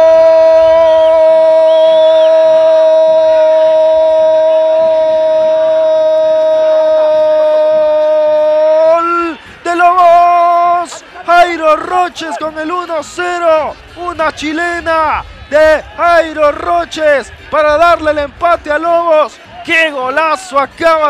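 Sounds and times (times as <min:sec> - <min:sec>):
commentator shouting goal call: 0:02.3 - 0:21.0.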